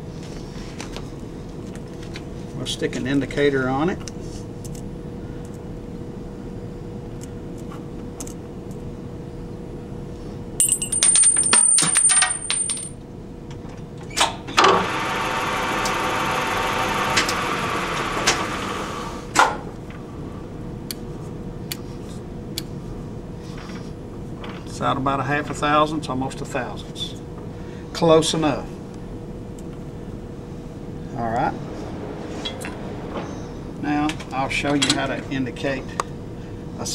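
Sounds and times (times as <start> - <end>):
metal clinks and clicks: 10.6 - 12.9
lathe running with a whine: 14.5 - 20.7, 27.0 - 36.9.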